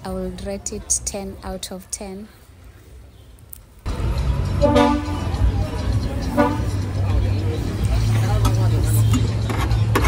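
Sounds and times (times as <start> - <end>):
street noise: 0.0 - 10.0
vehicle horn tooting: 4.6 - 5.5, 6.2 - 6.8.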